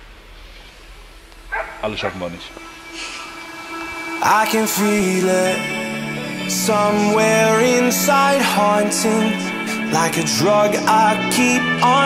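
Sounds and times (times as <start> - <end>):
steady low rumble: 0.0 - 9.6
man talking: 1.8 - 2.6.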